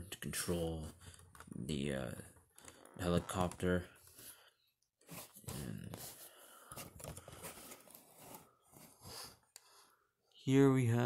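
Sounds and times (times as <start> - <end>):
rustling handling noise: 5.0 - 9.5.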